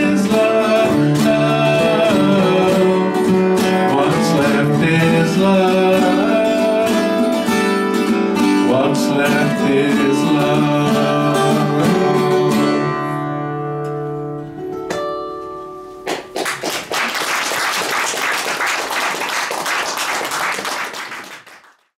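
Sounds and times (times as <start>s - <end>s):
applause: 16.1s - 22.0s.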